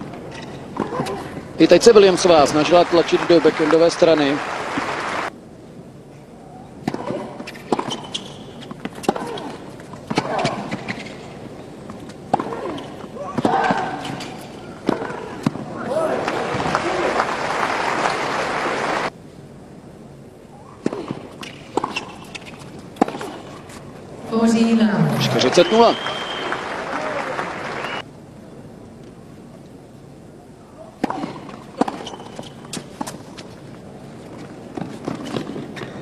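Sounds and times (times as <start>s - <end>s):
crowd applause: 2.0s - 5.3s, 16.0s - 19.1s, 25.0s - 28.0s
racket striking tennis ball: 6.8s - 11.1s, 12.0s - 15.7s, 20.8s - 23.8s, 31.0s - 33.4s.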